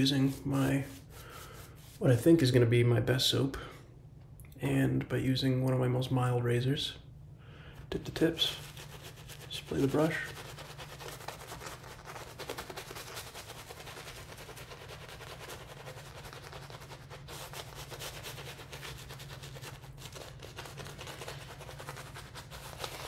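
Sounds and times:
shaving brush swishing lather: 0.0 - 2.6, 8.0 - 23.0.

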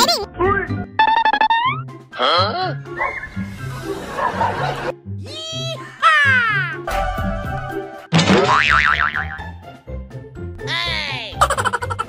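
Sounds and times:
background music with bass line: 0.0 - 12.0
cartoon comedy sound effects: 1.0 - 1.8.

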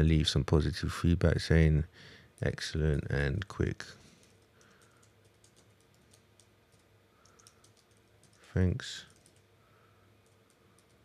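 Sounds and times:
faint computer keyboard typing: 4.2 - 9.5, 10.2 - 11.0.

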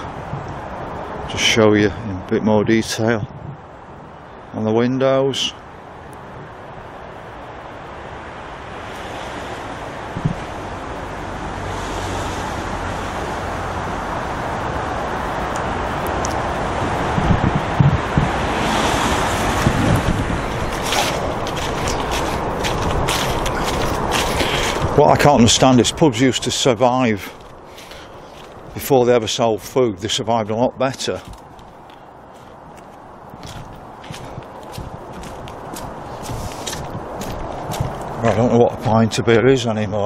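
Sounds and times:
wind blowing on microphone: 0.0 - 40.0.

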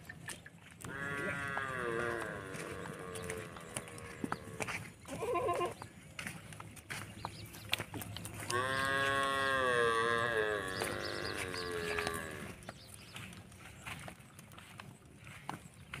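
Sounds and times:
hoof steps on dirt: 0.0 - 16.0
goat bleating: 0.9 - 5.8, 8.5 - 12.5.

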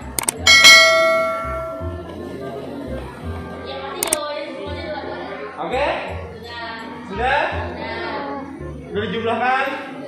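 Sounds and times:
mouse clicks: 0.0 - 0.4
bright bell ding: 0.5 - 2.1.

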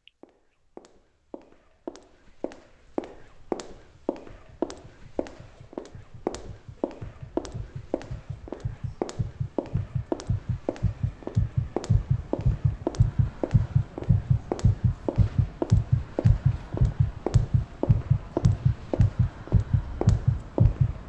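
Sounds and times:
footsteps walking: 0.2 - 21.0
low heartbeat: 6.3 - 21.0.

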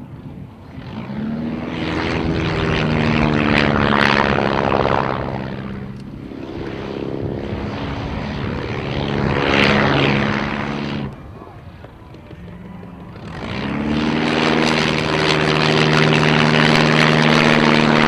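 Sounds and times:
biplane engine and propeller droning: 0.0 - 18.0.

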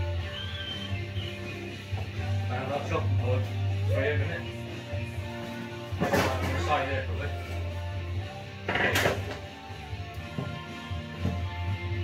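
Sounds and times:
music with steady bass line: 0.0 - 12.0.

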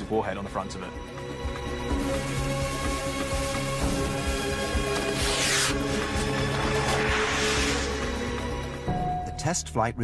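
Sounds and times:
background music held tones: 0.0 - 10.0
rocket launching hiss: 5.0 - 8.4.

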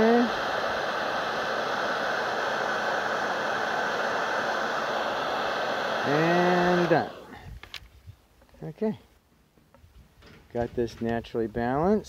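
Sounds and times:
heat gun fan blowing: 0.0 - 8.6.

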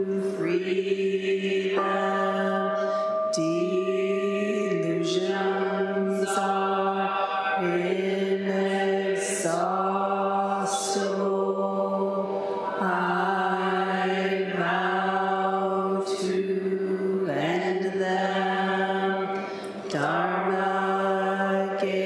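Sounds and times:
person chanting monotone: 0.0 - 22.0.

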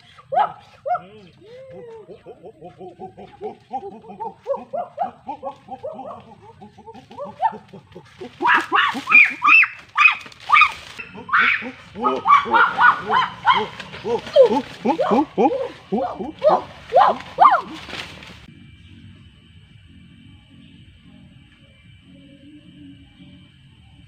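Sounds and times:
high-pitched vocal calls: 0.0 - 18.2.

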